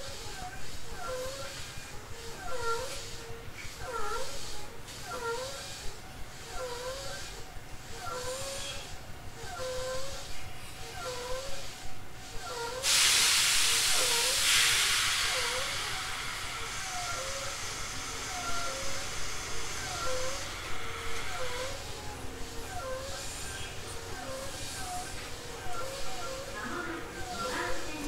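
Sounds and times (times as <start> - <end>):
loud hiss of compressed air: 12.3 - 28.0.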